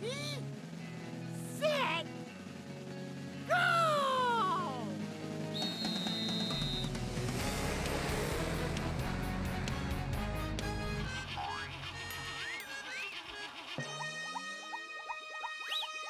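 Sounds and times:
background music: 0:00.0 - 0:16.0
referee whistle blast: 0:05.5 - 0:07.0
rumbling rush of karts: 0:05.7 - 0:10.2.

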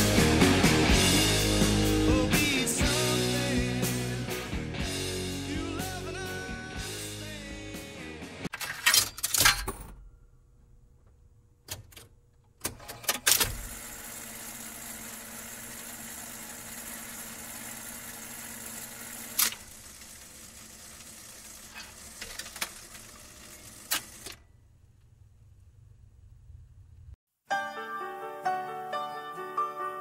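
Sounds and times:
record changer clicking: 0:21.7 - 0:24.4.

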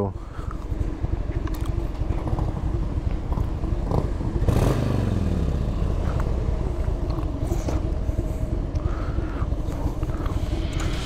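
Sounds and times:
motorcycle engine idling and revving: 0:00.0 - 0:11.0.

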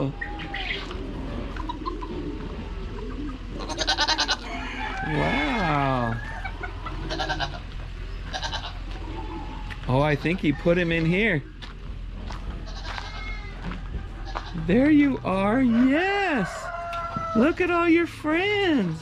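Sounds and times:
farm birds pulsing calls: 0:00.0 - 0:19.0
young goat bleating: 0:03.6 - 0:04.4, 0:07.0 - 0:09.0, 0:12.6 - 0:14.7.

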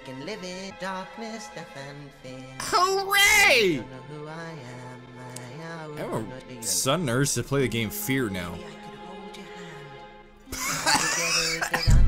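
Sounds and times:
music: 0:00.0 - 0:12.0
man coughing hard: 0:10.8 - 0:12.0.

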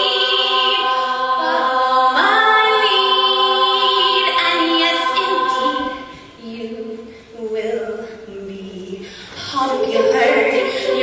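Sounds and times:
girls singing a chord: 0:00.0 - 0:11.0.

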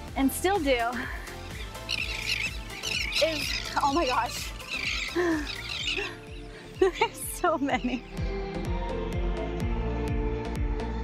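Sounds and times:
background music: 0:00.0 - 0:11.0
seabirds chirping overhead: 0:00.8 - 0:08.4.

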